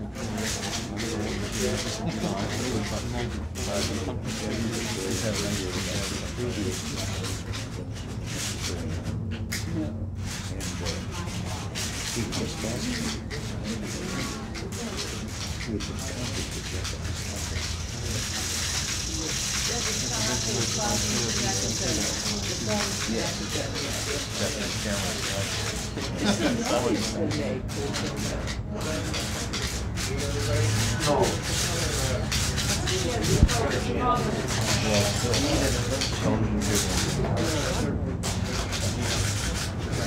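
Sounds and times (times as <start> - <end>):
quiet conversation: 0.0 - 40.0.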